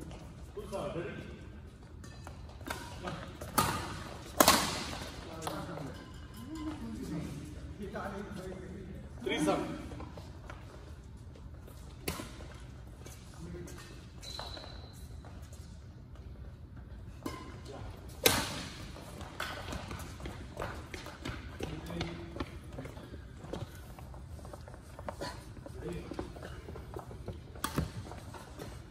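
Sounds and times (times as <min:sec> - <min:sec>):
rackets striking shuttlecocks: 0:02.0 - 0:05.8, 0:26.9 - 0:28.9
shoe squeak on court floor: 0:14.0 - 0:15.6.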